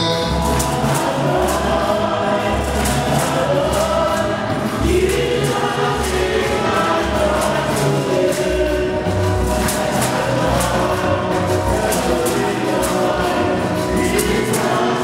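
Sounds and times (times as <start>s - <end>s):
congregation and choir singing: 0.0s - 15.0s
percussion ticks: 0.0s - 15.0s.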